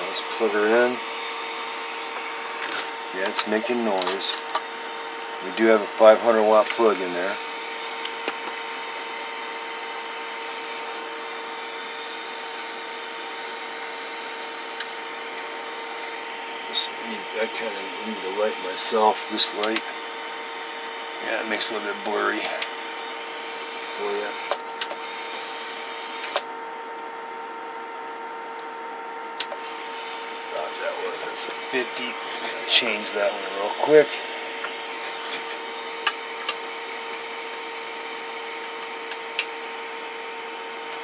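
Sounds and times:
radio static hiss: 0.0s - 28.3s, 29.2s - 41.0s
faint steady whine: 0.0s - 41.0s
hum-like tone: 0.0s - 41.0s.

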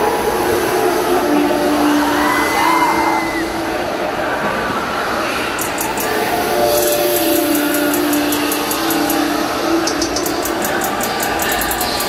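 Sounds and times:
crowd noise: 0.0s - 12.0s
held synth notes: 0.0s - 12.0s
fast even ticks: 5.6s - 12.0s.

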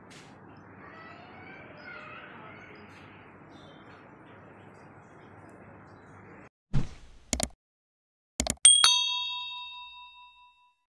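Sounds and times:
bell chime ringing: 8.7s - 10.8s.

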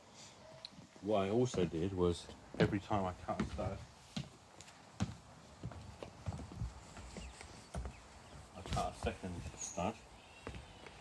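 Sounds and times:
footsteps on timber floor: 1.4s - 9.7s, 10.4s - 11.0s.

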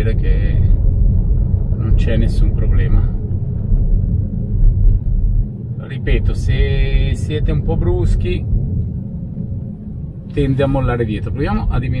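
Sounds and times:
tyres rumbling on snowy road: 0.0s - 12.0s.

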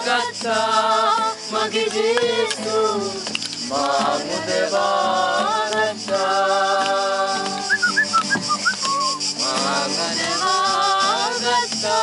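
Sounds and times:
musical accompaniment: 6.0s - 10.9s
person whistling short notes: 7.6s - 9.4s.

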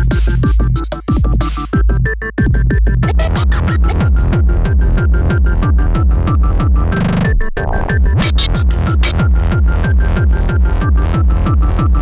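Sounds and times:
fast kick drum: 0.0s - 7.0s, 8.1s - 12.0s
high synth riff: 3.1s - 4.3s, 7.9s - 9.4s.

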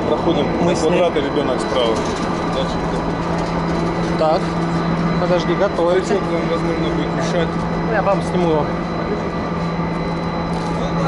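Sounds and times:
chairlift machinery humming: 0.0s - 11.0s.

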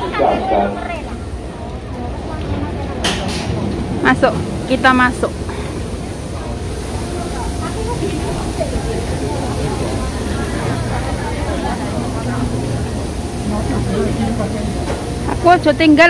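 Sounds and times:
murmur of voices: 0.0s - 16.0s
train and station hum: 0.0s - 16.0s.

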